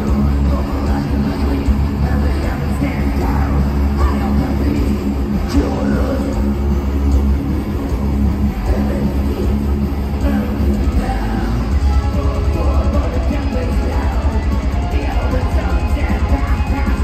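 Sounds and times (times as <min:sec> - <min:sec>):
metal band playing live: 0:00.0 - 0:17.0.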